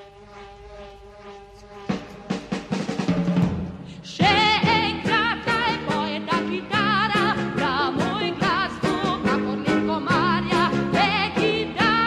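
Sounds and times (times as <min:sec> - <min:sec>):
pop band playing: 0:04.2 - 0:12.0.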